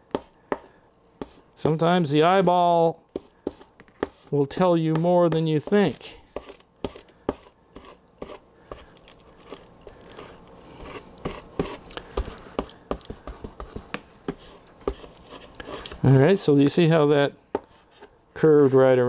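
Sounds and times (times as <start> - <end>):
plastic film clicking and crinkling: 8.9 - 10.3.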